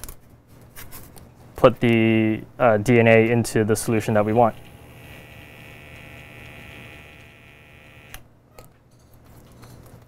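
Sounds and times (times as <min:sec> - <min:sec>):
pipette motor whirring: 0:04.2 - 0:08.2.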